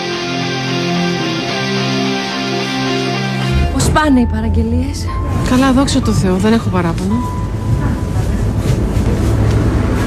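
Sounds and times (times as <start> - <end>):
steady low rumble: 3.4 - 10.0.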